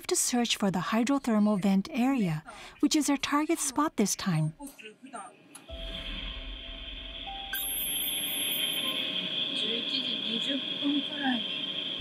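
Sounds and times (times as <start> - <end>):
low rumble: 5.7 - 8.2
electronic hiss and hum: 5.7 - 12.0
high pulsing electronic tone: 5.7 - 12.0.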